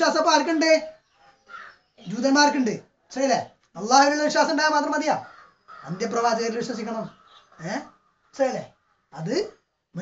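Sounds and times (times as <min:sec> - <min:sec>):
person speaking: 0:02.0 - 0:10.0.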